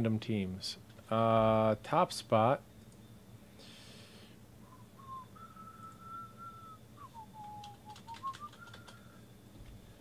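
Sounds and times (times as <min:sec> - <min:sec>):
man whistling a tune: 0:04.6 - 0:09.2
sharp clicks: 0:07.4 - 0:09.0.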